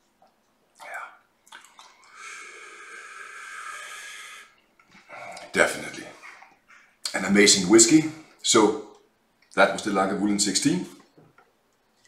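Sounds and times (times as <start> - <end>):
man exhaling breathily: 2.1 - 4.6.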